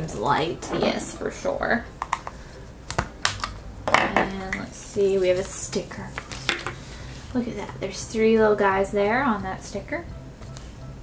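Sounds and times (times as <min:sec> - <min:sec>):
plastic clicks and snaps: 0:02.0 - 0:03.6.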